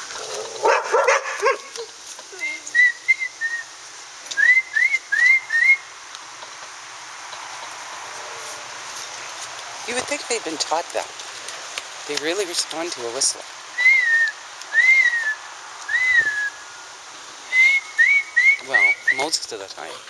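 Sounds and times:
person whistling: 0:02.8 - 0:03.6, 0:04.4 - 0:05.8, 0:13.8 - 0:16.6, 0:17.5 - 0:19.2.

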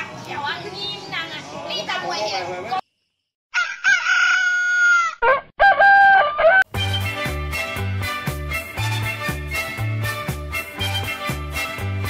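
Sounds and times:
rooster crowing: 0:03.5 - 0:06.7.

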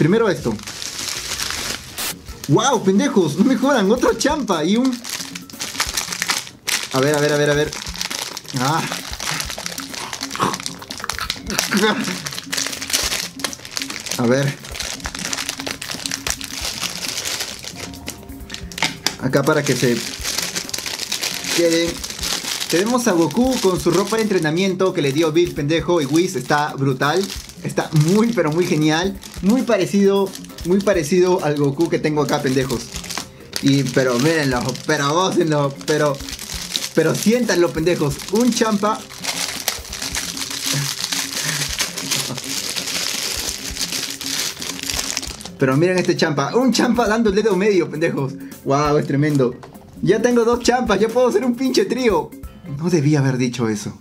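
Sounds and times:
plastic packaging crinkling: 0:00.0 - 0:46.2
quiet background music: 0:00.0 - 0:54.0.

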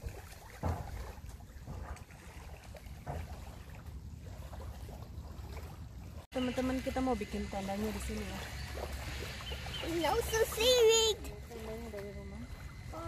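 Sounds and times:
waves lapping on pebbles: 0:00.0 - 0:13.0.

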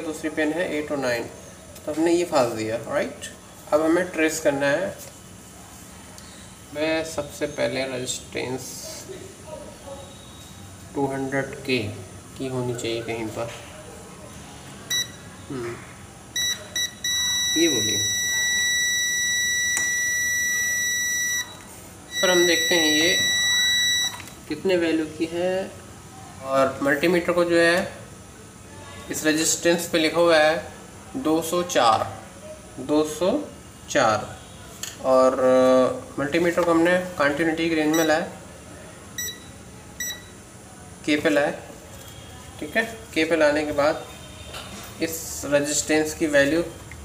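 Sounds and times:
multimeter continuity beep: 0:14.9 - 0:15.3, 0:16.4 - 0:24.4, 0:37.9 - 0:38.3, 0:39.2 - 0:40.4.

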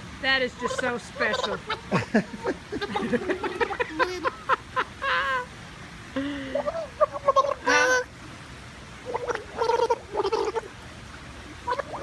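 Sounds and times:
girl vocalizing at water line: 0:06.2 - 0:08.1.

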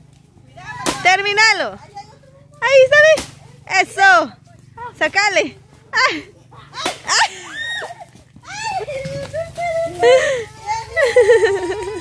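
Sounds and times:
children calling out: 0:06.0 - 0:12.0.

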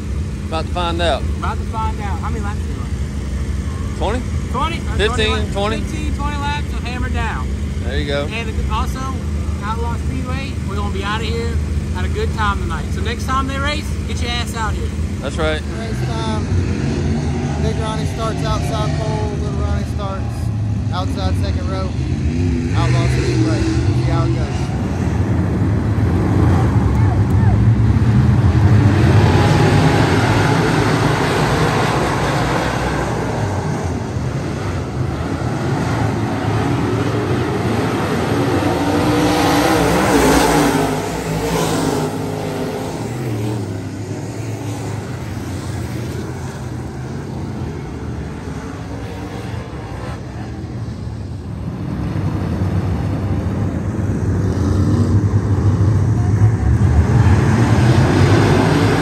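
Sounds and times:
race car engines accelerating: 0:00.0 - 0:59.0.

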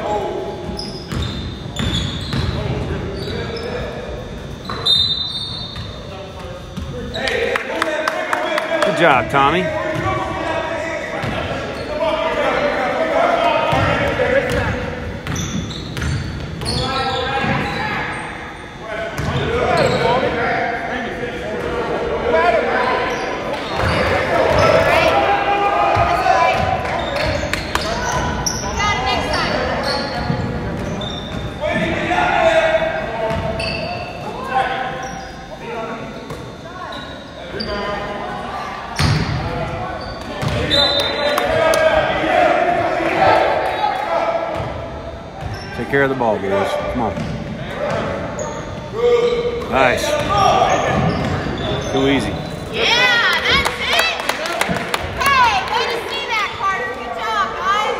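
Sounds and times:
sneakers squeaking: 0:00.0 - 0:07.6, 0:08.4 - 0:20.8, 0:21.5 - 0:57.9
indistinct shouts and chatter: 0:00.0 - 0:57.9.

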